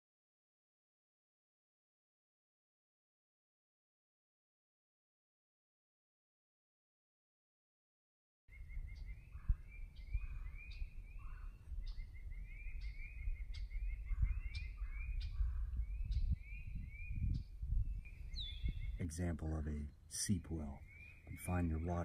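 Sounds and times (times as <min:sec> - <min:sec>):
songbird chirping: 0:08.5 - 0:22.0.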